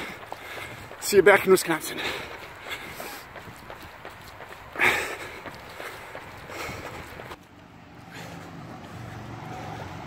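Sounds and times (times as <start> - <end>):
faint footfalls: 0.0 - 7.6
runner breathing hard: 0.0 - 10.0.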